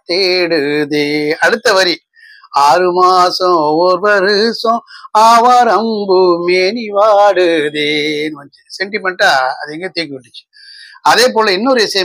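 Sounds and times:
man singing unaccompanied: 0.0 - 12.0.

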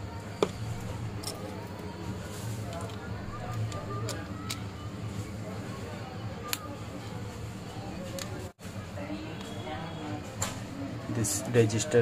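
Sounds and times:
phone parts clicking: 2.6 - 4.8.

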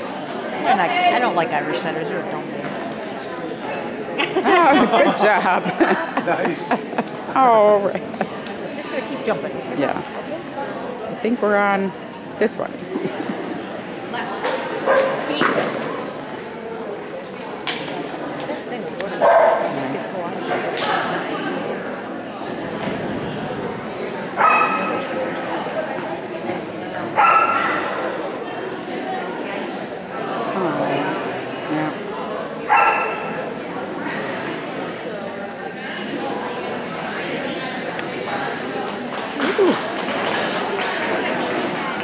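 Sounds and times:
echoing murmur of people talking: 0.0 - 42.0
dog barking: 14.9 - 15.2, 19.2 - 19.7, 24.4 - 25.0, 27.2 - 27.8, 32.7 - 33.3.

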